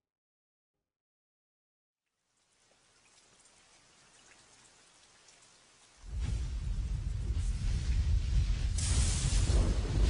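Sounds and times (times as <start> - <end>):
crackling hiss: 2.5 - 10.0.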